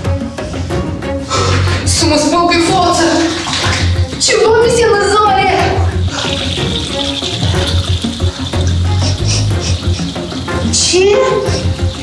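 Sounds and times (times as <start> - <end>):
hands washing in water: 1.3 - 12.0
tap water running into sink: 1.5 - 12.0
person talking: 1.7 - 6.0, 10.7 - 11.7.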